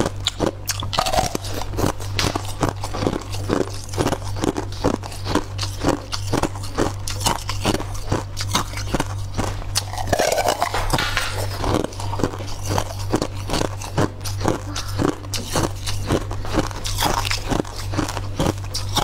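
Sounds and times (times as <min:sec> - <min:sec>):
crunchy chewing: 0:00.0 - 0:19.0
steady low hum: 0:00.0 - 0:19.0.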